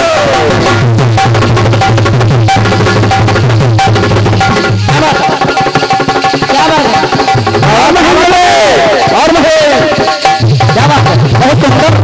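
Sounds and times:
hand drum fast rhythm: 0.0 - 12.0
held melodic notes: 0.4 - 11.2.

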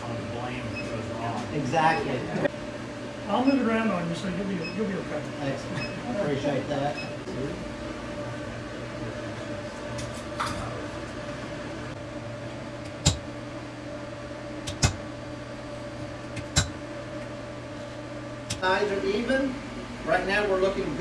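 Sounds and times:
steady hum: 0.0 - 21.0.

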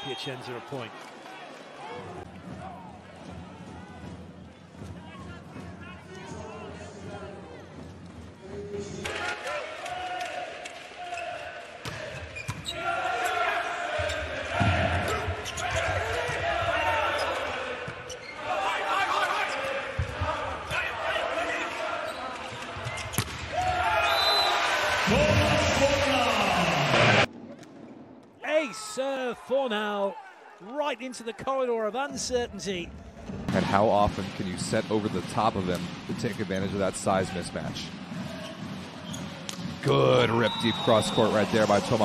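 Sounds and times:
crowd shouting: 9.0 - 22.2.

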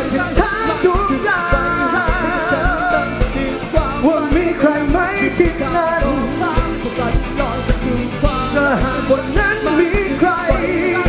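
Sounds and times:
bass guitar: 0.0 - 11.0
electric guitar: 0.0 - 11.0
man singing: 0.0 - 11.0
steady drum beat: 0.0 - 11.0.

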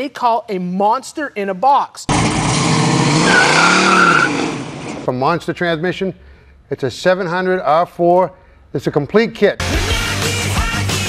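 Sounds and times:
car engine revving: 2.1 - 5.1
tyres squealing: 2.6 - 5.1.

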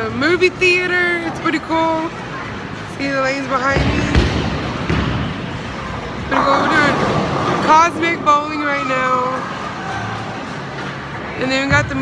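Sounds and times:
bowling hall rumble: 3.6 - 12.0.

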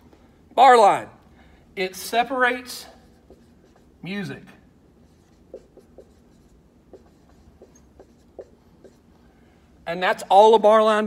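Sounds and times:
marker writing on whiteboard: 3.0 - 4.1, 4.8 - 9.2.

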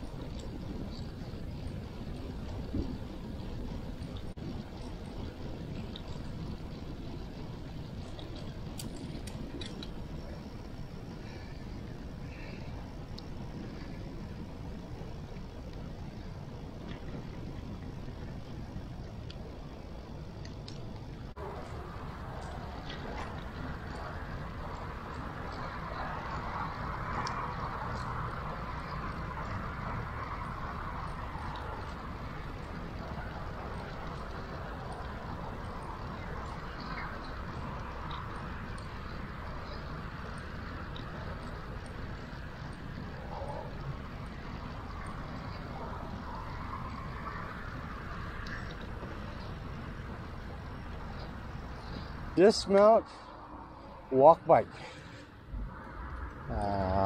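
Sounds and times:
tyres rolling on asphalt: 0.0 - 57.0
wind on microphone: 0.0 - 57.0.

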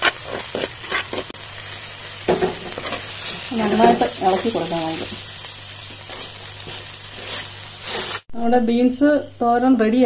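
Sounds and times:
spatula scraping a pan: 0.0 - 1.4, 2.3 - 8.3
vegetables sizzling in a pan: 0.0 - 10.0.

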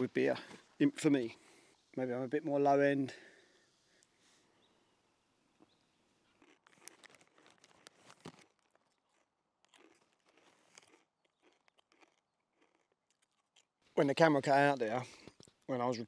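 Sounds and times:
plastic snack packet crinkling: 6.2 - 13.7.

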